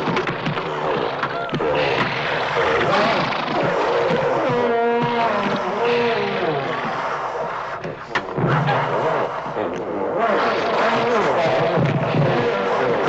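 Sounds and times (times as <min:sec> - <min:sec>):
creatures roaring and screeching: 0:00.0 - 0:07.8, 0:08.4 - 0:13.0
dense noisy wash: 0:00.0 - 0:13.0.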